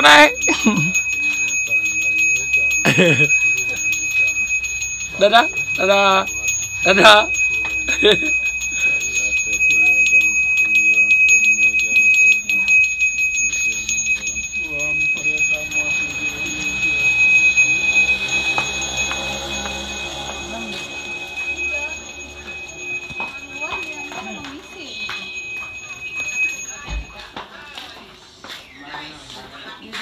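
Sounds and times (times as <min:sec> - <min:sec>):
handbell rung rapidly: 0:00.0 - 0:27.7
voices: 0:00.0 - 0:30.0.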